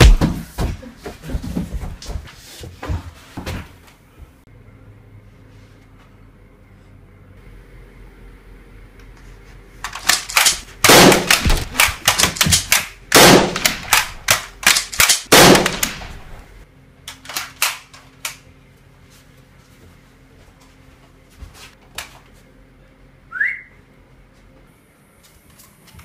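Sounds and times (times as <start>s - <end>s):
rapid gunshots: 10.1s - 16.2s
loud deep gun blasts: 10.8s - 11.8s, 13.1s - 14.0s, 15.2s - 16.4s.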